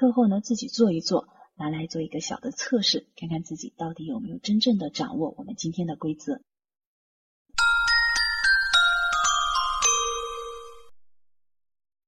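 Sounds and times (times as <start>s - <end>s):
bell-like chime jingle: 7.6s - 11.0s.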